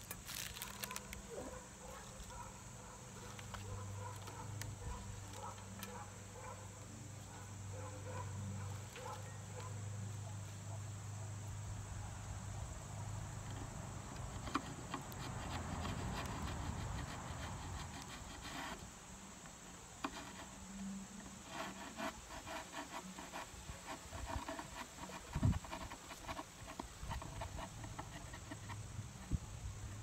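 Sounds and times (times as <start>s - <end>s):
insect chirring: 0.0s - 10.2s
metal chisel scraping wood: 13.5s - 18.9s, 20.0s - 20.6s, 21.2s - 28.9s.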